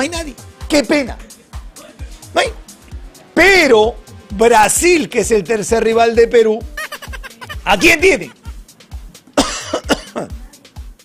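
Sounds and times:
background music with steady beat: 0.0s - 11.0s
man coughing: 7.0s - 8.6s, 9.4s - 10.3s.

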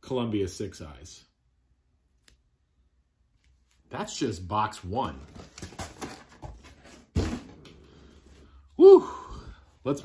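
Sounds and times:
records and cardboard box handling: 5.1s - 7.8s
man whooping: 8.8s - 9.6s.

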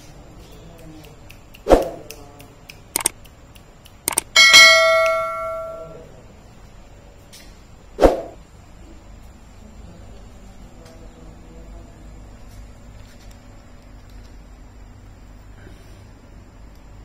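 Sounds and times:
mouse clicks: 2.9s - 4.3s
bright bell ding: 4.4s - 6.0s.

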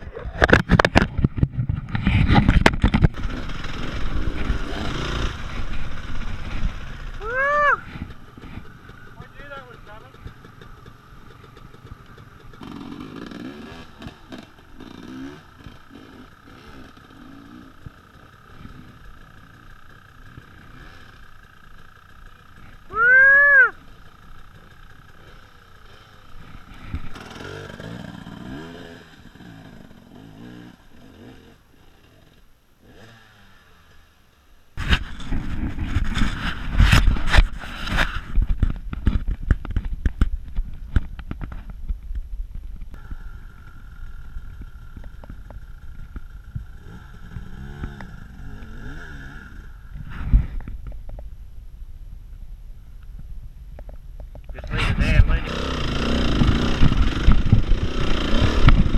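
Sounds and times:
motorcycle engine: 0.0s - 52.0s, 52.8s - 58.9s
loud rising and falling call: 7.2s - 7.9s, 22.7s - 23.9s
low voices: 22.8s - 23.8s, 54.5s - 55.6s.

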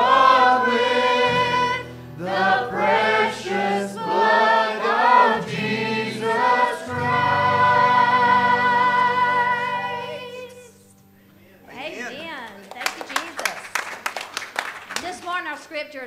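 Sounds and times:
congregation singing: 0.0s - 11.5s
instrumental accompaniment: 0.0s - 13.3s.

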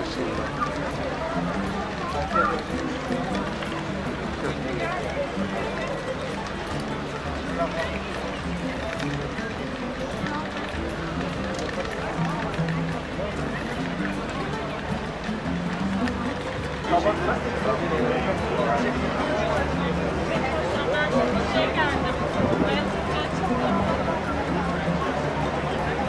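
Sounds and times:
background music: 0.0s - 26.0s
crowd talking: 0.0s - 26.0s.

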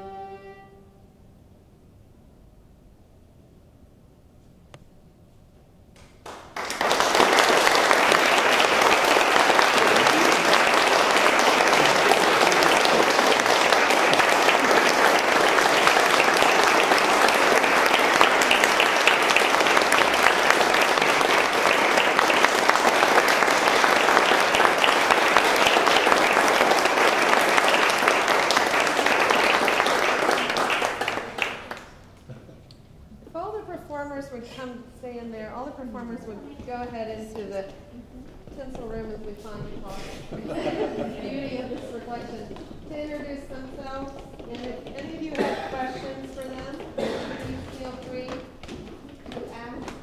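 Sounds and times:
audience applauding: 6.1s - 32.3s.

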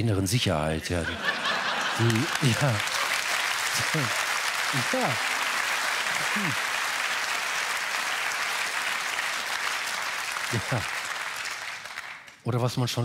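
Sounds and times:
audience applauding: 1.2s - 12.4s.

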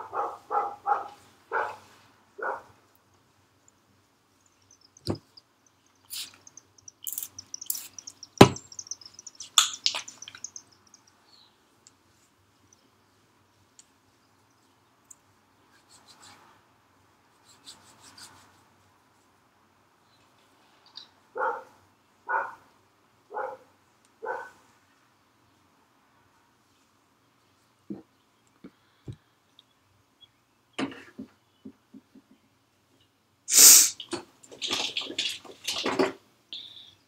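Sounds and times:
dog barking: 0.0s - 2.8s, 21.3s - 22.7s, 23.3s - 24.6s
spray bottle hissing: 6.1s - 10.5s, 33.5s - 34.1s
bottle knocking: 7.1s - 10.6s.

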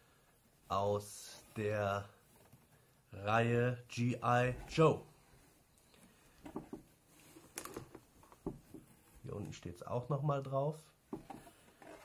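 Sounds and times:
t-shirt rustling: 4.3s - 9.8s.

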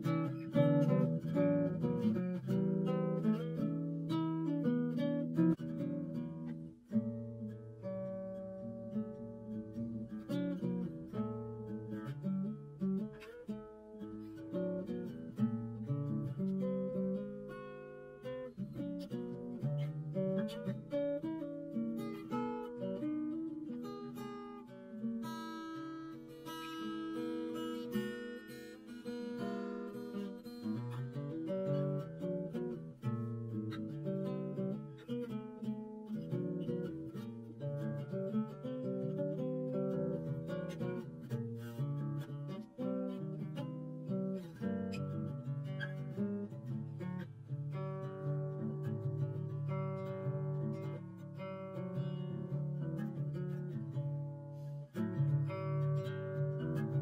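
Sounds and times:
acoustic guitar playing: 0.0s - 57.0s.

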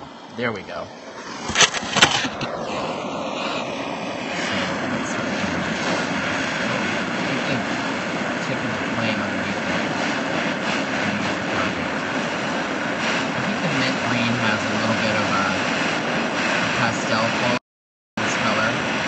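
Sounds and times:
gas torch flame rushing: 0.0s - 17.6s, 18.2s - 19.0s.

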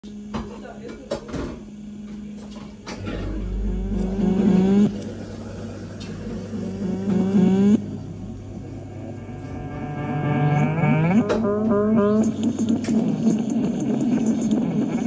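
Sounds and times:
steady hum: 0.0s - 15.0s
low gliding tones from speaker: 1.8s - 15.0s.

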